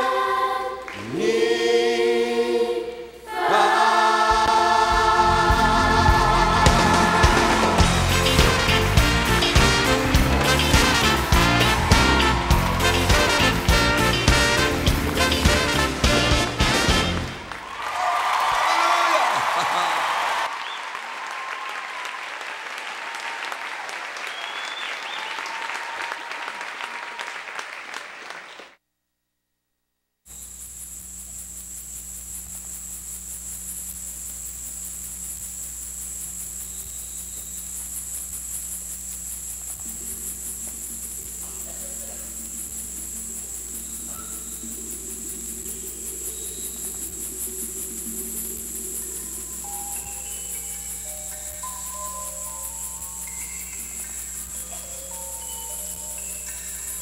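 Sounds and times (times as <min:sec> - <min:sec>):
crickets chirring: 0:00.0 - 0:17.6, 0:24.2 - 0:26.6, 0:30.3 - 0:57.0
audience applauding: 0:04.4 - 0:28.8
low sustained music tones: 0:39.9 - 0:57.0.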